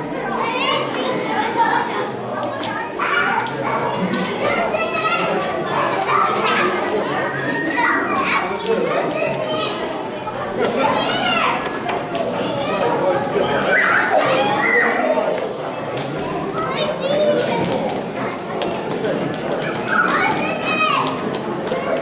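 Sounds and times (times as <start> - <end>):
background chatter: 0.0 - 22.0
children shouting: 0.0 - 22.0.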